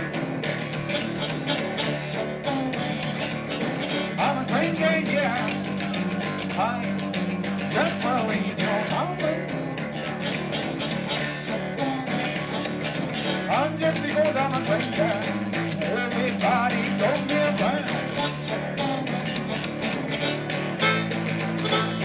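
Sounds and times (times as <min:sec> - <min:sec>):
electric guitar strumming: 0:00.0 - 0:22.0
guitar melody line bending: 0:00.0 - 0:22.0.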